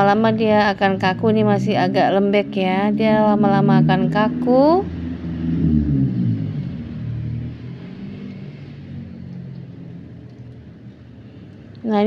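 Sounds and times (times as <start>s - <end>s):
low wavering rumble: 1.2s - 9.8s.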